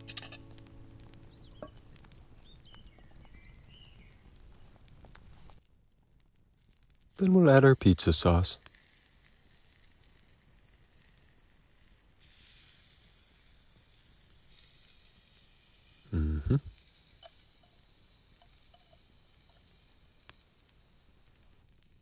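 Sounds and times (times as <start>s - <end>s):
pizza crust sizzling in skillet: 0.0s - 22.0s
short voice-like sound: 16.1s - 16.7s.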